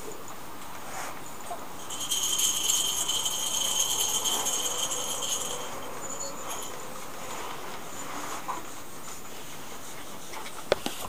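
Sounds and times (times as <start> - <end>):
high rapid rattling trill: 1.8 - 9.9.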